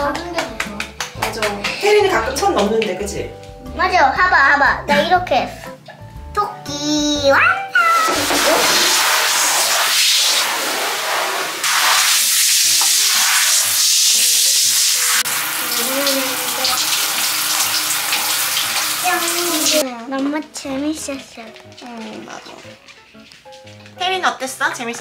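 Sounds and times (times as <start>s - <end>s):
shower head spraying water: 7.9s - 19.8s.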